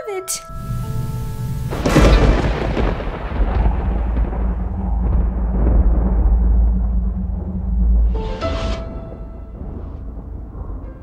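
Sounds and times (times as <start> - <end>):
low steady drone: 0.4 - 11.0
thunder crash and rumble: 0.6 - 11.0.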